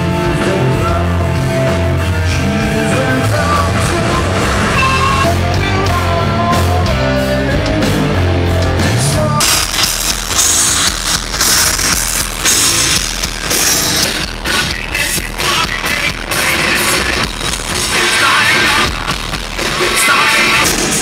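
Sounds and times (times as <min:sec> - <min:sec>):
driving drumbeat: 0:00.0 - 0:21.0
electric guitar: 0:00.0 - 0:21.0
rock band playing: 0:00.0 - 0:21.0.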